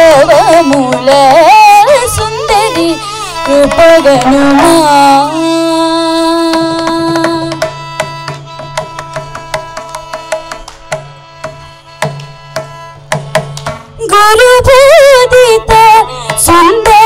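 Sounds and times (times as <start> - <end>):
hand drum beats: 0.0 - 5.2, 6.3 - 14.1, 15.7 - 17.0
woman singing: 0.0 - 7.7, 14.0 - 17.0.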